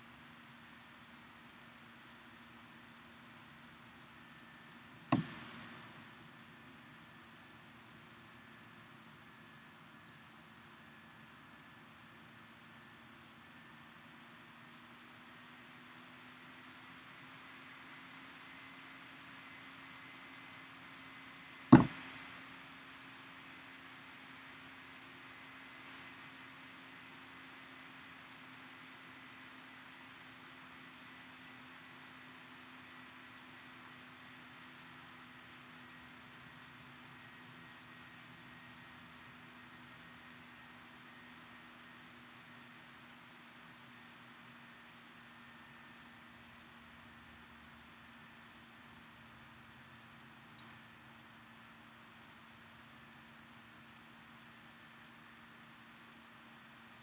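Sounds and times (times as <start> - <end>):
low hum with hiss: 0.0 - 57.0
sharp knock: 5.1 - 5.5, 21.8 - 22.0.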